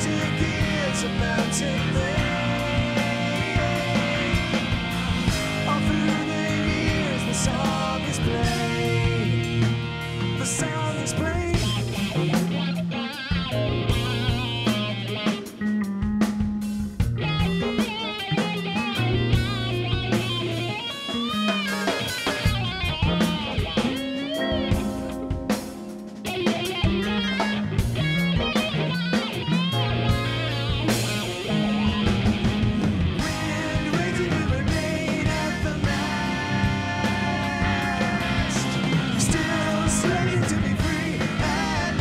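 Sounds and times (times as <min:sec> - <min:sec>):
bass: 0:00.0 - 0:42.0
drum kit: 0:00.0 - 0:42.0
electric guitar lead: 0:00.0 - 0:42.0
keyboards: 0:00.0 - 0:42.0.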